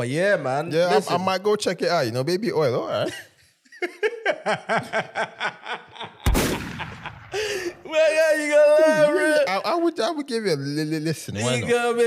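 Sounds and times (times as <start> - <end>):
hearty laughter: 3.0 - 7.8.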